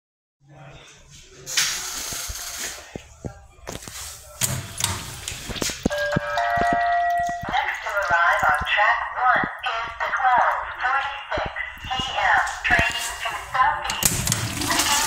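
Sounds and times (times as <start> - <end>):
person speaking: 6.0 - 15.0
urinal flushing: 13.4 - 15.0.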